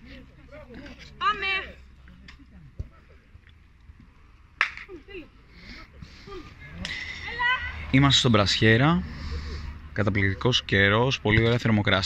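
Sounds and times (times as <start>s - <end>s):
sharp smacks: 4.6s - 4.9s.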